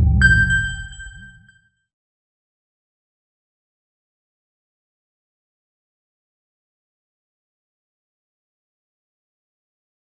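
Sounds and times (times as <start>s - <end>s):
bell-like ding: 0.0s - 1.5s
low wavering hum: 0.0s - 1.5s.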